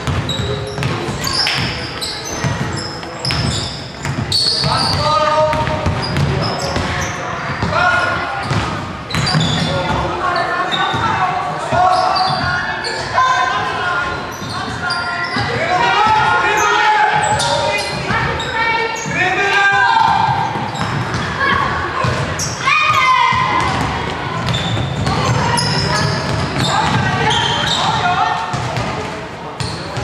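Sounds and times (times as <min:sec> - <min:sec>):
basketball bouncing on wooden floor: 0:00.0 - 0:01.8, 0:02.4 - 0:06.9, 0:08.4 - 0:10.0
players calling out: 0:00.0 - 0:30.0.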